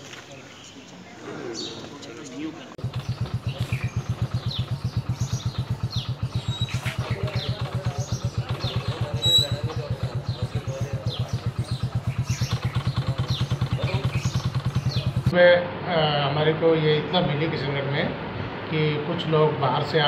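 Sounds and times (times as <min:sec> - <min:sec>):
vehicle engine idling: 0:02.8 - 0:20.0.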